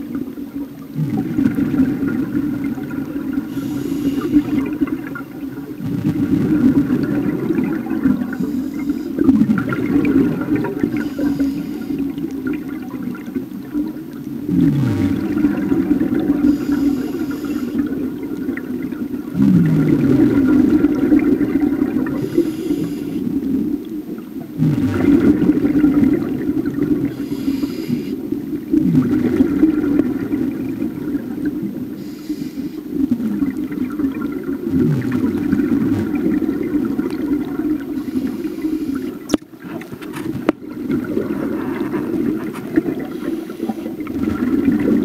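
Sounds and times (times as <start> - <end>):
gurgling exhaled bubbles: 0.0 - 45.0
regulator hissing inhale: 3.4 - 4.8, 8.3 - 9.3, 10.9 - 12.2, 16.4 - 17.9, 22.2 - 23.4, 27.1 - 28.3, 31.9 - 33.0, 37.9 - 39.3, 43.0 - 44.0.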